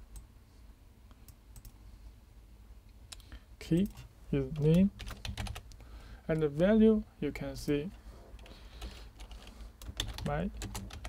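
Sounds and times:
low steady hum: 0.0s - 11.0s
keyboard keystrokes: 8.8s - 11.0s.

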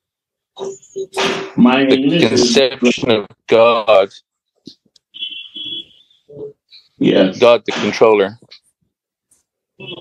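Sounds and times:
high-pitched beep tone: 0.6s - 1.6s.

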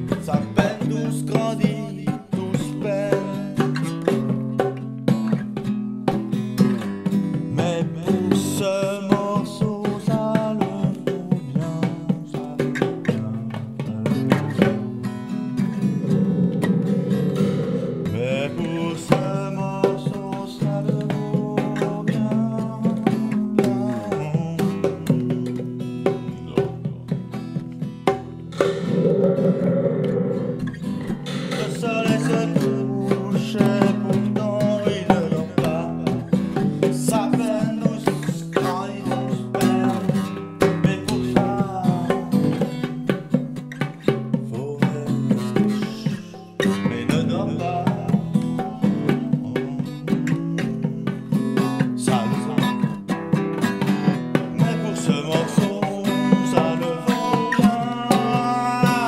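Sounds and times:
guitar-led rock music: 0.0s - 59.0s.

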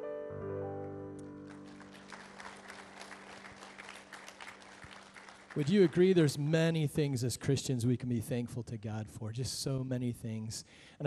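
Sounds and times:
congregation clapping: 1.2s - 7.0s.

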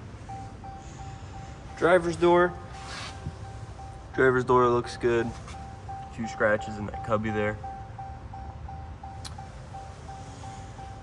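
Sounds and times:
car warning chime beeping: 0.0s - 11.0s.

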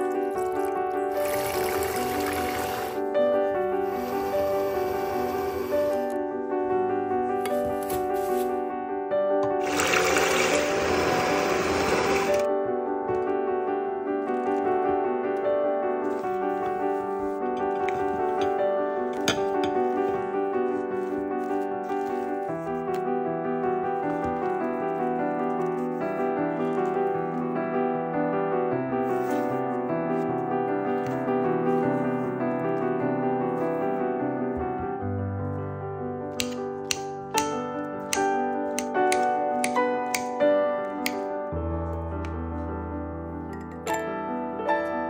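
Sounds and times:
piano music: 0.0s - 45.0s.

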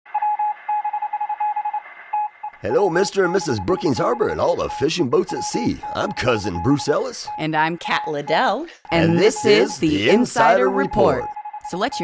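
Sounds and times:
morse code beeping: 0.2s - 12.0s.

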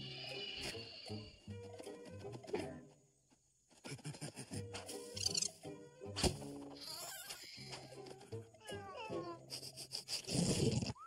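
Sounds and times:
cartoon music: 4.7s - 5.9s.

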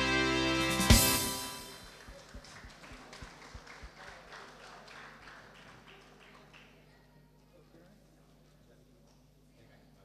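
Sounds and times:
light hand clapping: 1.8s - 6.8s.

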